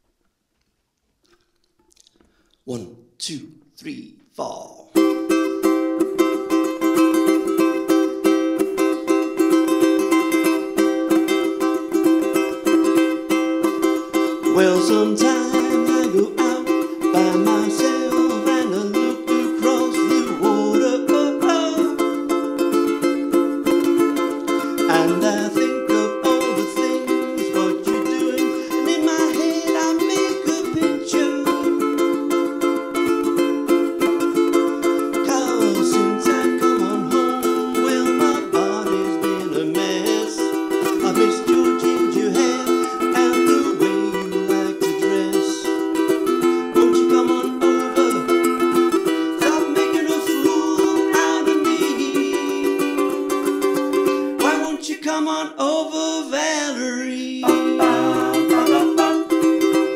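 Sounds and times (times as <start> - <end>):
ukulele strummed: 4.9 - 59.9.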